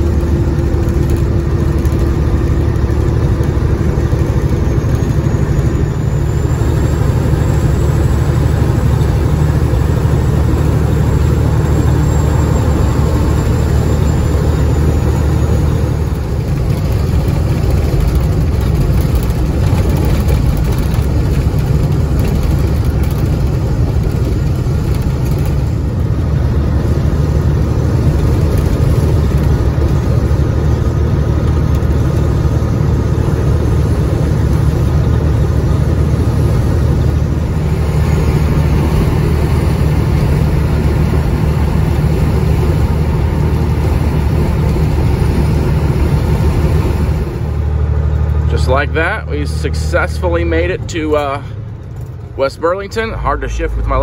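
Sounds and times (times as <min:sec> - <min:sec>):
diesel engine drone: 0:00.0 - 0:54.0
road and tyre noise: 0:00.0 - 0:54.0.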